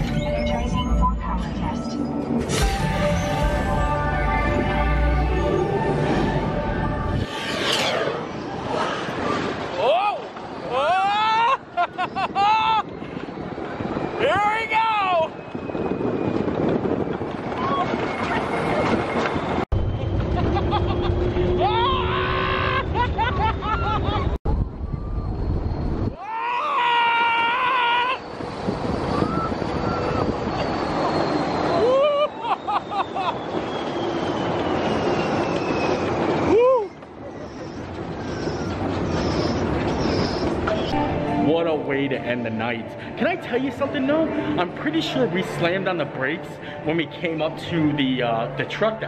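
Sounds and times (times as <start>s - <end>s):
rushing wind: 2.0s - 47.2s
ride music: 2.6s - 7.2s
ride vehicle rumbling at speed: 15.2s - 26.2s, 28.2s - 41.4s.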